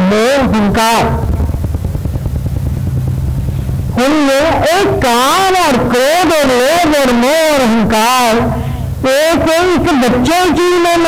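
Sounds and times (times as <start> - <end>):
low buzzing instrumental drone: 0.0 - 11.0.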